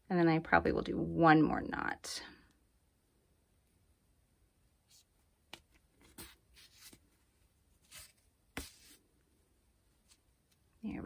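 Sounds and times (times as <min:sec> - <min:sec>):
scratchy yarn rustles: 0:04.8 - 0:09.1.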